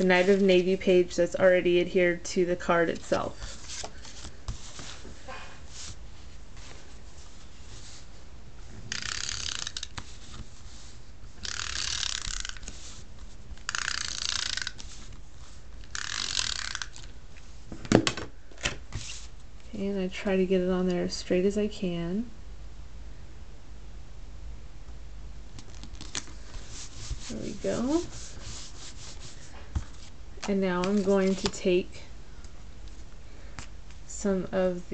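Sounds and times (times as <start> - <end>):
tape runner ratcheting whir: 8.9 - 9.9, 11.4 - 12.7, 13.6 - 14.8, 15.8 - 17.1.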